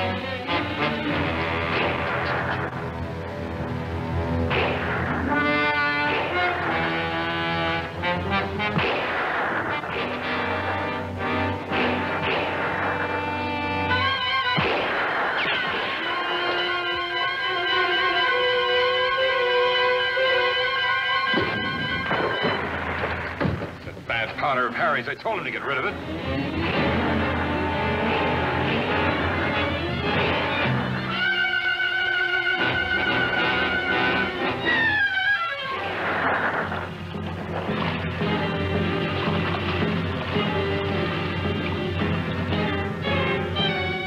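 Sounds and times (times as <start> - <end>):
orchestral brass and string chords: 0.0 - 23.4, 24.1 - 44.0
loud orchestral hits: 0.0 - 24.7.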